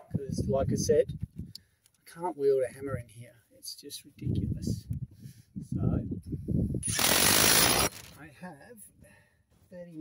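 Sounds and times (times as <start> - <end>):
power driver driving screw: 6.8 - 8.2.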